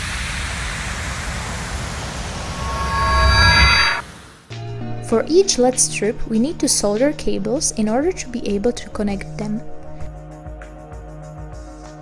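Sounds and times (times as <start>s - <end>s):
whoosh sound effect: 2.1s - 4.1s.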